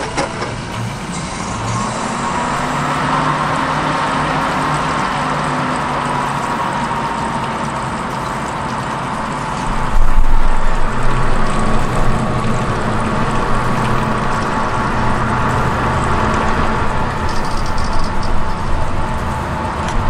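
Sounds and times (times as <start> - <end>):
computer fans whirring hum: 0.0 - 20.0.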